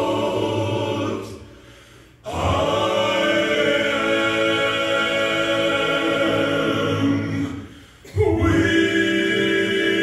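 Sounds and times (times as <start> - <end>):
male quartet singing in harmony: 0.0 - 10.0.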